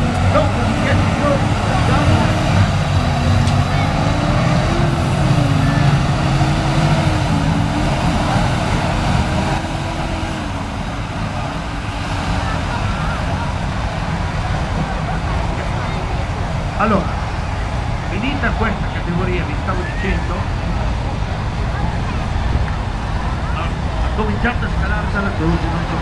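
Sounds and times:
tractor diesel engine under load: 0.0 - 26.0.

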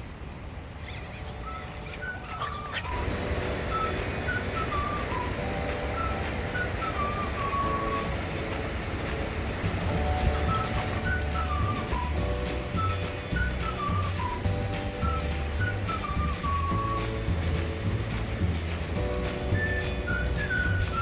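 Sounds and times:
whistled melody music: 0.8 - 21.0
low steady rumble: 2.9 - 21.0.

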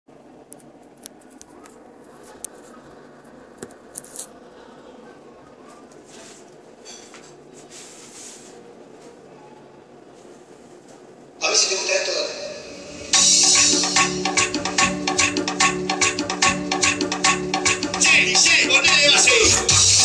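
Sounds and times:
faint background hum: 0.1 - 13.2
soft rustling: 5.6 - 9.2.

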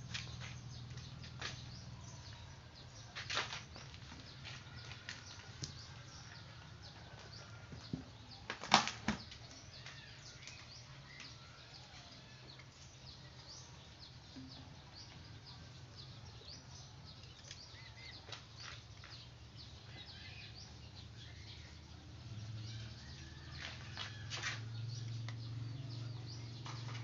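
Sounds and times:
small birds chirping: 0.0 - 27.0.

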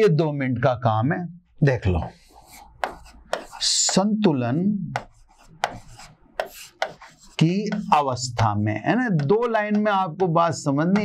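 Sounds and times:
marker scratching on board: 2.0 - 10.4
marker tapping on board: 2.0 - 11.0.

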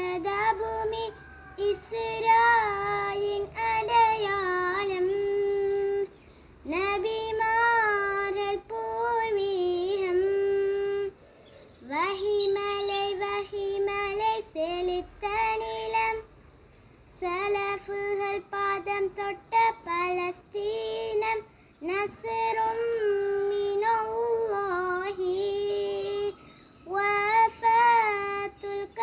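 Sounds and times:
girl singing unaccompanied: 0.0 - 29.0.

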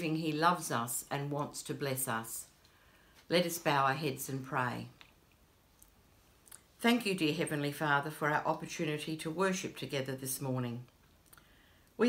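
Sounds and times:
woman speaking: 0.0 - 2.5, 3.3 - 5.0, 6.8 - 10.9.

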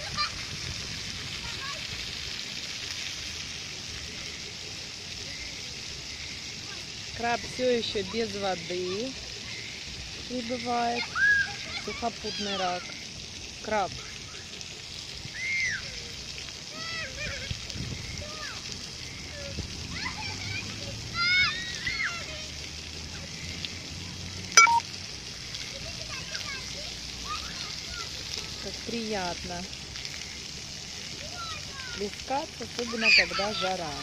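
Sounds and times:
children calling and squealing: 0.0 - 2.3, 7.9 - 23.1, 25.4 - 28.8, 30.0 - 34.0
water jets spraying on pavement: 0.0 - 34.0.

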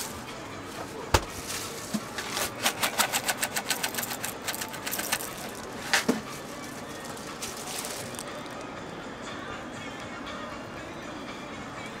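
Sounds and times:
cornflakes rattling in plastic container: 1.6 - 6.1, 7.4 - 8.4.

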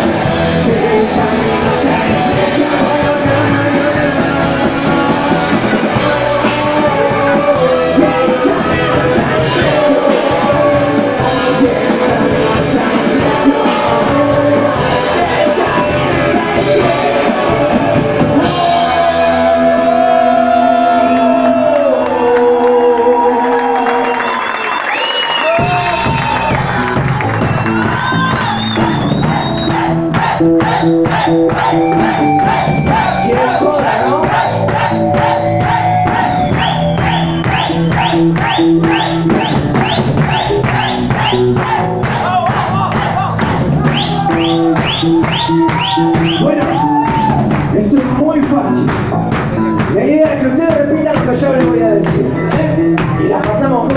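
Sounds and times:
drums and cymbals: 0.0 - 19.8, 25.4 - 53.9
electric guitars: 0.0 - 53.9.

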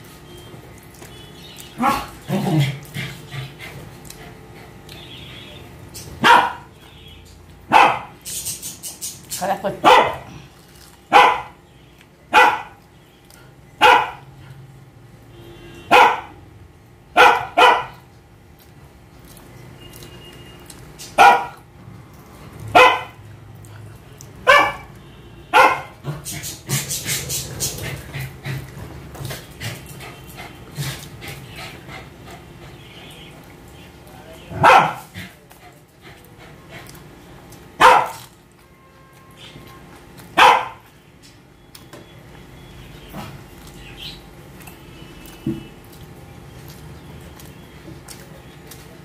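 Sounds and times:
dog barking: 1.8 - 2.6, 6.2 - 6.7, 7.7 - 8.2, 9.8 - 10.3, 11.1 - 11.6, 12.3 - 12.8, 13.8 - 14.3, 15.8 - 16.4, 17.2 - 18.0, 21.2 - 21.6, 22.7 - 23.2, 24.4 - 24.9, 25.5 - 26.0, 34.5 - 35.3, 37.8 - 38.3, 40.4 - 40.9.

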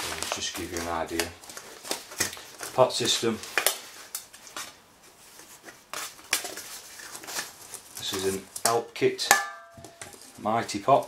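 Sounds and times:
stuff sack rustling: 0.0 - 8.6
metal pot clinking: 9.2 - 10.2.

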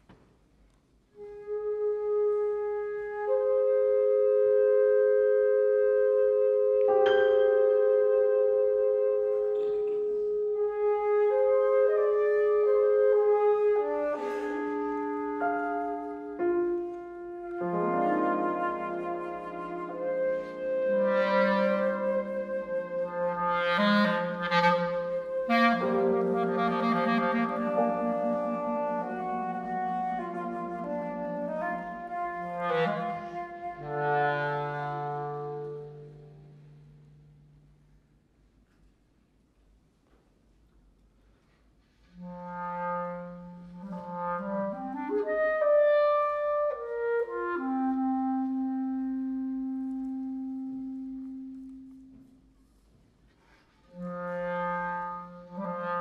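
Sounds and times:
flute: 1.1 - 38.0, 41.4 - 56.0
clarinet: 1.1 - 39.0, 39.6 - 56.0
piano: 1.2 - 39.0, 42.2 - 53.2.

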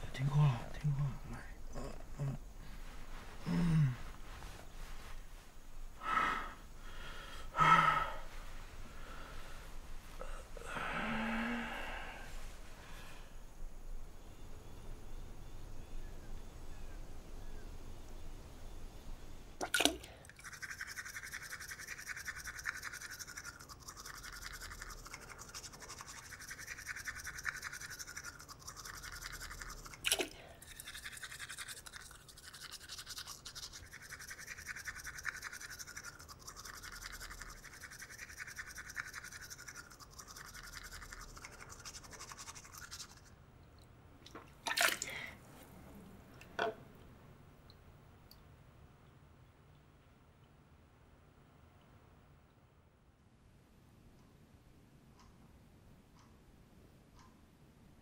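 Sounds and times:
toothbrush scrubbing teeth: 20.3 - 43.3.

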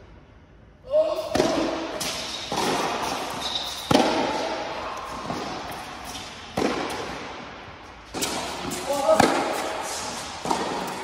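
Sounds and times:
tennis racket hits: 1.3 - 7.4, 8.1 - 11.0
tennis ball bouncing: 1.3 - 11.0.

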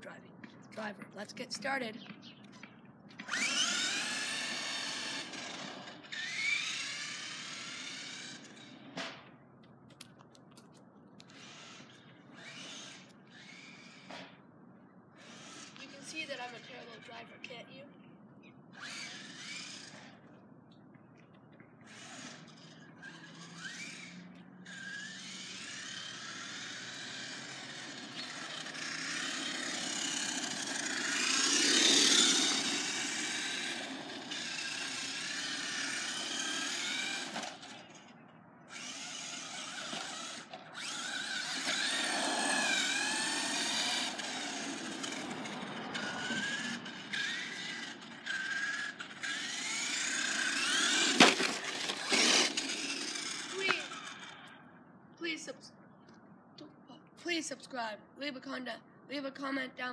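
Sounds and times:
toy car electric motor whining: 3.1 - 9.1, 11.2 - 14.4, 15.1 - 17.5, 18.7 - 20.3, 21.8 - 54.7.

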